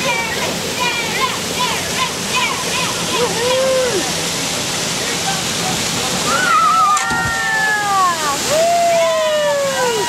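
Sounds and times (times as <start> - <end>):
people talking and calling: 0.0 - 10.0
waterfall rushing: 0.0 - 10.0.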